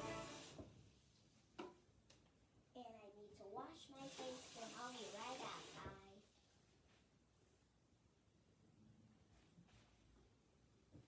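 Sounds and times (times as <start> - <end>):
steady hiss: 0.0 - 0.8, 3.4 - 6.2.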